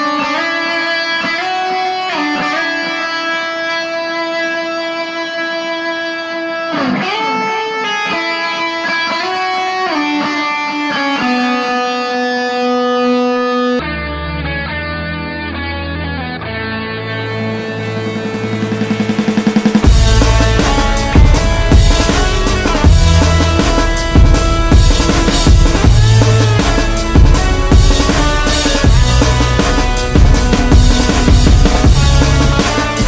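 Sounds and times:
guitar melody background music: 0.0s - 33.0s
low bass notes: 17.0s - 33.0s.

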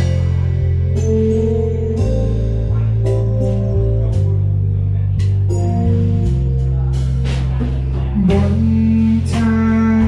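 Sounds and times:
live pop band playing: 0.0s - 4.5s, 5.2s - 10.0s
woman singing: 8.2s - 10.0s.

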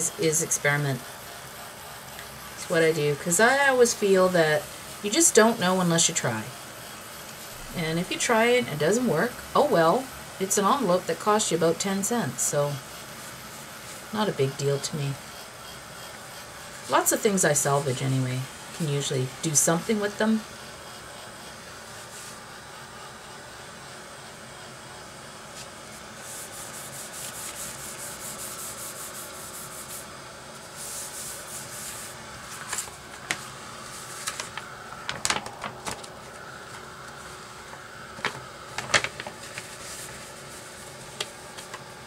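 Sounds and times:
heat gun blowing: 0.0s - 42.0s
paper envelope rustling: 31.9s - 41.9s.

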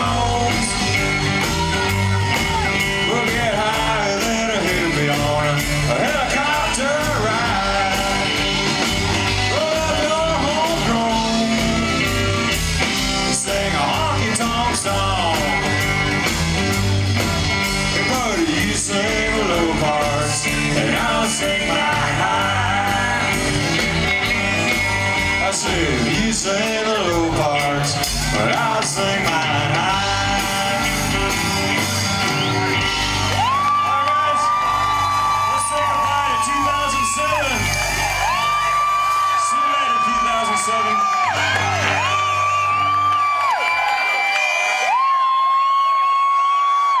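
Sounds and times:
audience cheering and whooping: 0.0s - 28.6s, 29.8s - 47.0s
country band final note: 0.0s - 43.4s
drums: 0.0s - 47.0s
electric guitars: 0.0s - 47.0s.

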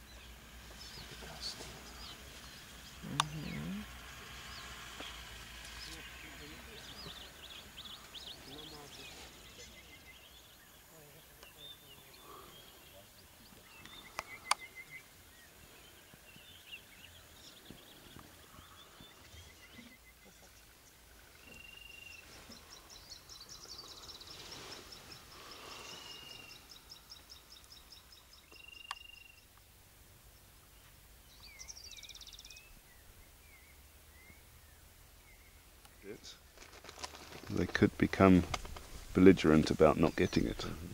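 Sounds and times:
birds calling: 0.0s - 40.9s.

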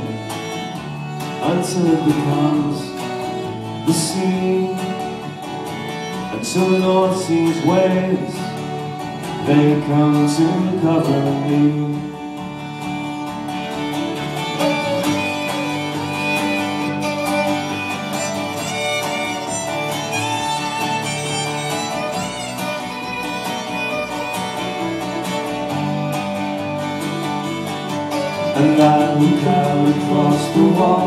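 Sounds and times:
fiddle melody: 0.0s - 31.0s
strummed guitar: 0.0s - 31.0s.

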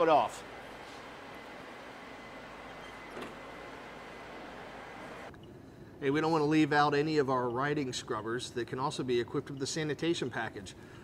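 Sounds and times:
room hiss and hum: 0.0s - 11.0s.

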